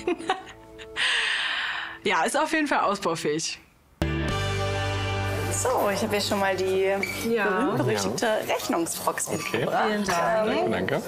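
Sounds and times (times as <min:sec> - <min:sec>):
soft background music: 0:00.0 - 0:09.4
person gasping: 0:01.0 - 0:02.0.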